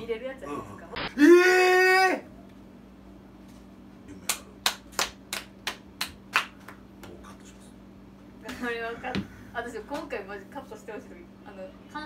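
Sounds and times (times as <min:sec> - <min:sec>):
hand clapping: 0:04.2 - 0:07.2.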